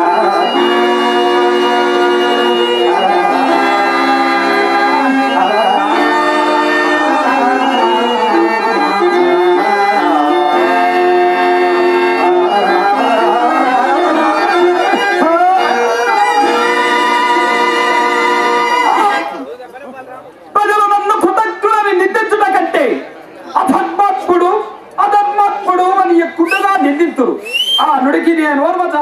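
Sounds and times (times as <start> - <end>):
stage music with held notes: 0.0 - 19.6
voices talking: 0.0 - 28.7.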